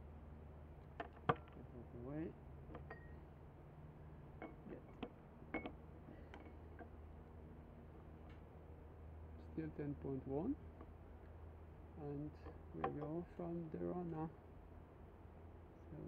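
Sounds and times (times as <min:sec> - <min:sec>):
low steady hum: 0:00.0 - 0:16.0
stick clinking against glass jar: 0:02.8 - 0:03.2.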